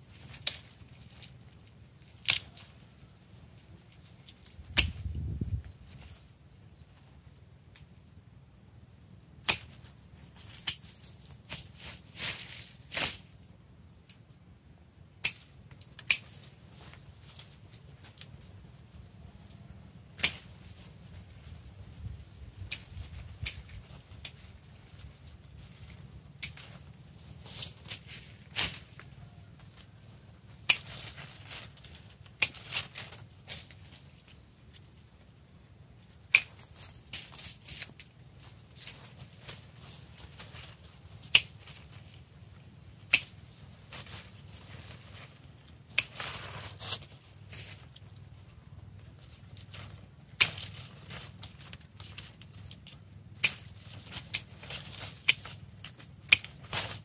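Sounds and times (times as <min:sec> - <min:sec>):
leaves rustling: 0:00.0 - 0:07.4, 0:09.5 - 0:13.5, 0:15.4 - 0:57.0
pruning shears snipping branches: 0:02.0 - 0:02.7, 0:04.0 - 0:05.2, 0:09.4 - 0:09.9, 0:10.5 - 0:13.3, 0:15.2 - 0:16.6, 0:20.2 - 0:20.6, 0:22.6 - 0:24.5, 0:25.8 - 0:33.9, 0:36.2 - 0:38.2, 0:38.9 - 0:42.1, 0:43.0 - 0:45.2, 0:45.9 - 0:47.1, 0:49.6 - 0:57.0.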